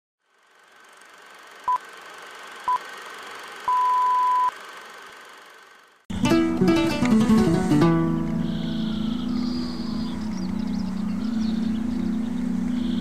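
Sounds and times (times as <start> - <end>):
electronic beeps: 3.7 - 4.5
steady hiss: 6.6 - 8.2.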